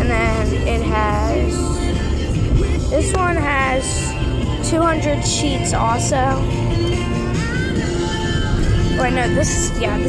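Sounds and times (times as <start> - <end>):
music through car speaker: 0.0 - 10.0.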